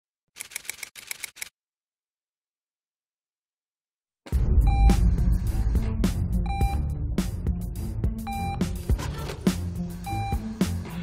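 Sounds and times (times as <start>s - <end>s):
sharp mechanical clicks: 0.3s - 1.6s.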